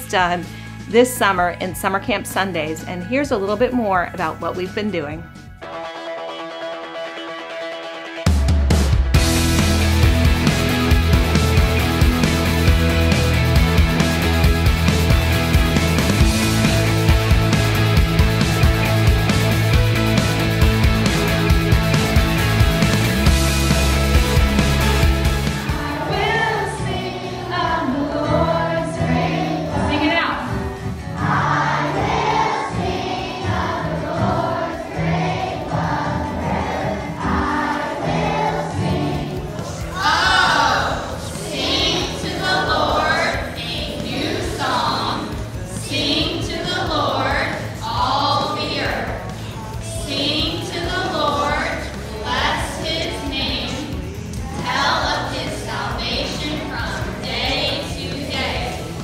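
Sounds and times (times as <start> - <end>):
children and adults singing: 25.7 - 30.5, 31.2 - 59.0.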